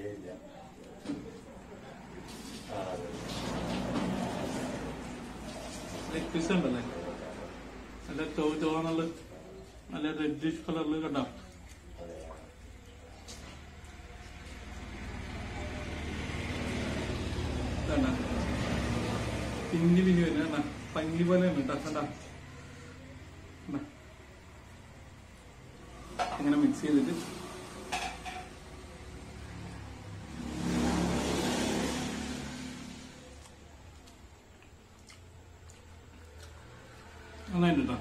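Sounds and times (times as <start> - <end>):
vehicle passing by: 1.6 - 8.8, 13.3 - 24.7, 25.8 - 34.2, 36.0 - 38.0.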